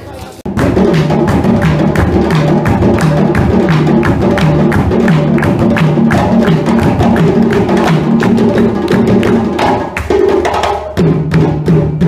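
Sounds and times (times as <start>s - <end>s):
hand drums playing rhythm: 0.5s - 12.0s.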